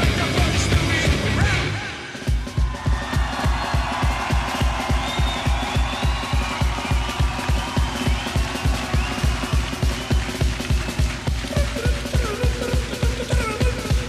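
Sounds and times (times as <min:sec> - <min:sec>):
crowd noise: 0:00.0 - 0:14.0
heavy metal band playing live: 0:00.0 - 0:14.0
fast kick drum beat: 0:02.3 - 0:14.0.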